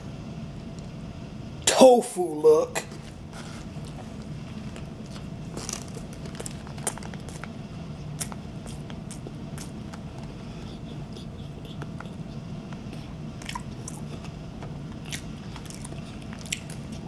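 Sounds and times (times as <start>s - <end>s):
person biting and chewing burger: 3.4s - 17.0s
wet mouth clicks and squishes: 5.6s - 7.5s, 8.1s - 17.0s.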